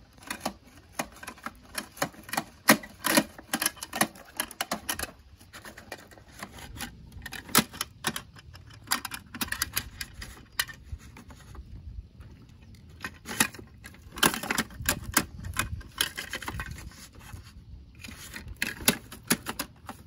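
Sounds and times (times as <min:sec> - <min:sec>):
plastic toy clicking and rattling: 0:00.1 - 0:11.6, 0:12.6 - 0:20.0.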